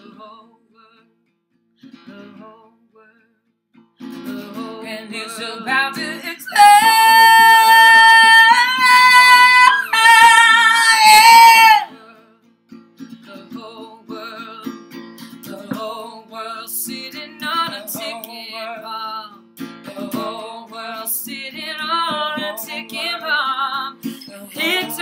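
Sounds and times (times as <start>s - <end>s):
woman singing: 0.0s - 0.9s, 4.3s - 12.2s, 13.3s - 14.8s, 15.4s - 19.3s, 19.9s - 25.0s
acoustic guitar strumming: 3.7s - 25.0s.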